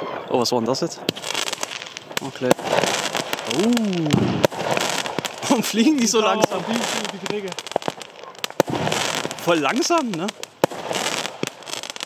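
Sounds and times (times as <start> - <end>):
firework crackles and pops: 0.0 - 12.0
loud firework crack: 0.9 - 12.0.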